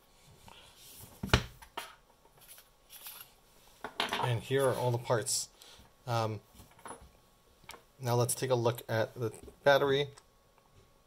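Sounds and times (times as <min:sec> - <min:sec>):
faint scraping and rustling: 0:02.3 - 0:05.2.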